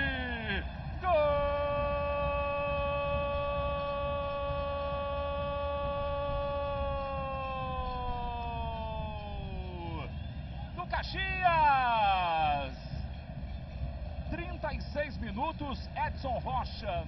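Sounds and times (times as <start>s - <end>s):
commentator shouting goal: 0.0s - 10.1s, 10.8s - 12.9s.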